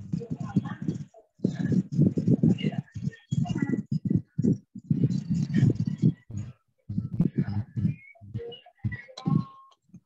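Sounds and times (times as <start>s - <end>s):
choppy voice on video call: 0.0s - 10.0s.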